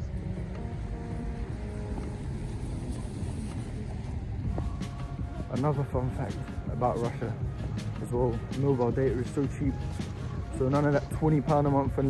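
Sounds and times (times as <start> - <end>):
outdoor street noise rumble: 0.0 - 12.0.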